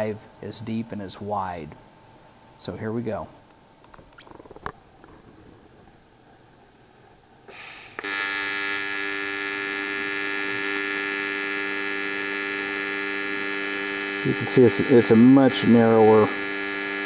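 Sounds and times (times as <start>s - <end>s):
welding arc buzzing: 8.0s - 17.0s.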